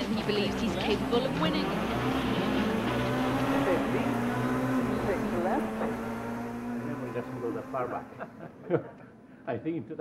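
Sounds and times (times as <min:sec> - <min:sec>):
rally car engine revving: 0:00.0 - 0:08.5.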